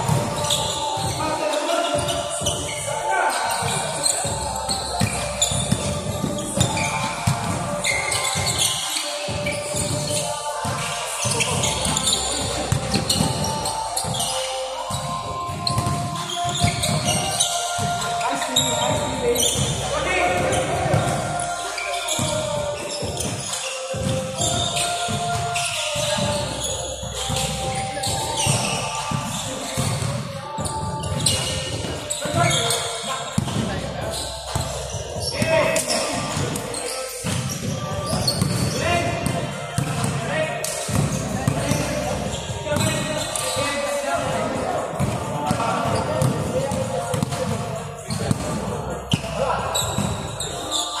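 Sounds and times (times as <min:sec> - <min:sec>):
basketball bouncing on wooden floor: 0:00.0 - 0:01.2, 0:05.0 - 0:07.7, 0:15.0 - 0:17.2, 0:33.4 - 0:33.7, 0:37.3 - 0:40.2, 0:45.0 - 0:47.6
players calling out: 0:00.0 - 0:51.0.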